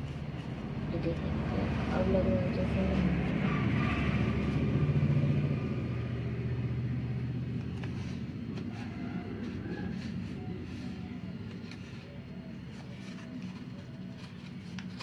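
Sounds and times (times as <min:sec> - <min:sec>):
vehicle engine rumbling: 0:00.0 - 0:15.0
paper rustling: 0:07.6 - 0:15.0.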